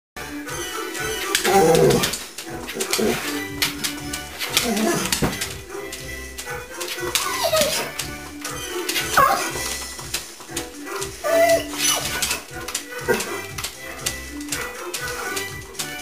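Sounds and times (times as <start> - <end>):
music with steady beat: 0.2 - 16.0
dog whining: 0.5 - 9.9, 10.6 - 13.6.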